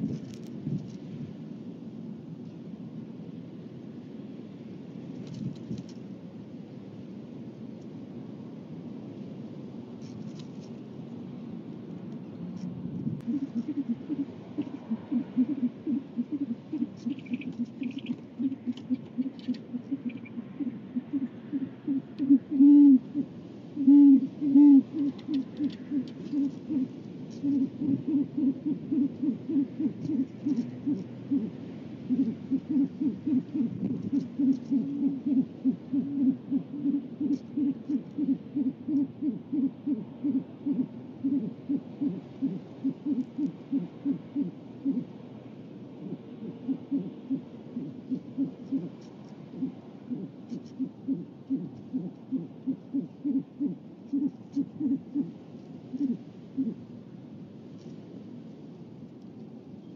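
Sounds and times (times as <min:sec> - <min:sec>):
owl hooting: 0:13.2 - 0:45.2, 0:46.0 - 0:56.9.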